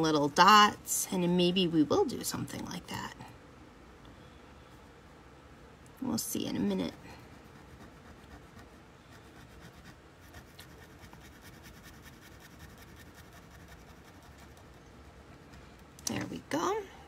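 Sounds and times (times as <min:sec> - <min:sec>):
pen nib scratching on paper: 0:07.4 - 0:15.5.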